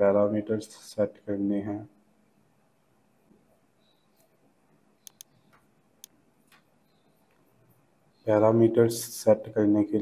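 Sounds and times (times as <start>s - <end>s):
computer mouse clicks: 5.0s - 7.4s.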